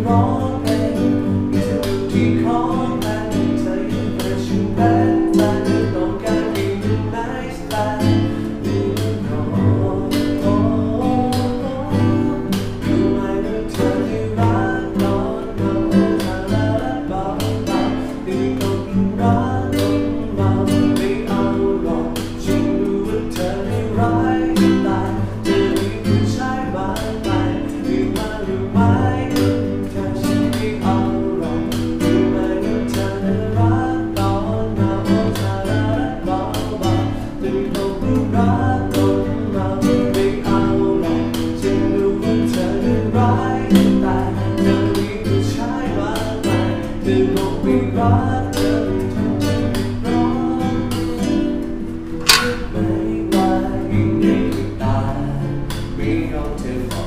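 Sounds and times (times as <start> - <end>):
fingerstyle classical guitar: 0.0 - 57.0.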